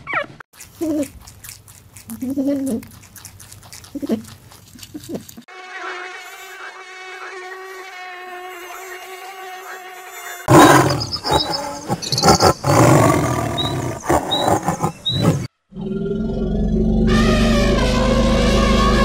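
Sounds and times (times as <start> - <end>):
bird chirps: 8.6 - 15.5
tiger roaring: 10.5 - 19.0
buzzing drone: 15.3 - 19.0.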